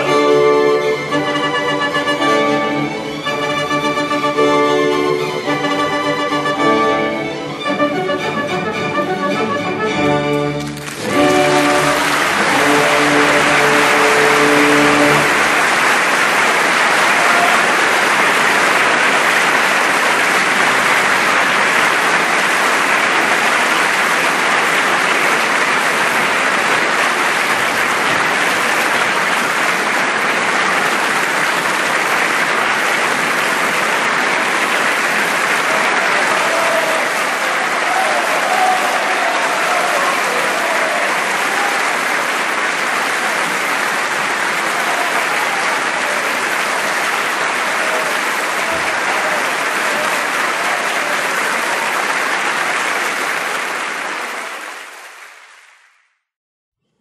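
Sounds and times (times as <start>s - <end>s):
audience applauding: 0.0s - 56.2s.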